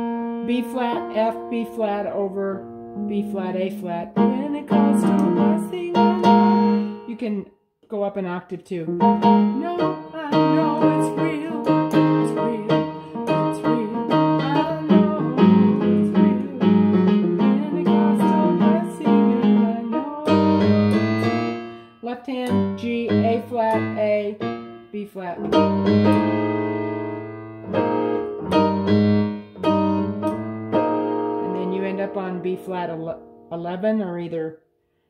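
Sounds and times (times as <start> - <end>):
keyboard playing gospel chords: 0.0 - 7.1, 9.0 - 33.4.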